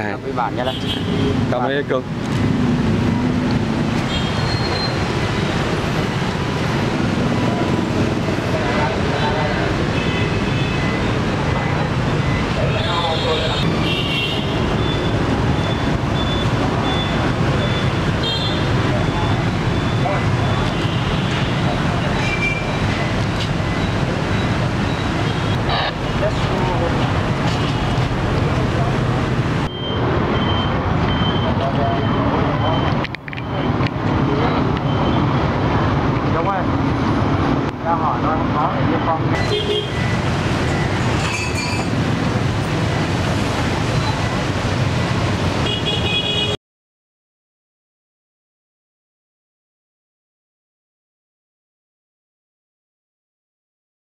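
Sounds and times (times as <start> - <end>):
motorbike traffic: 0.0 - 46.6
indistinct voices: 18.6 - 42.0.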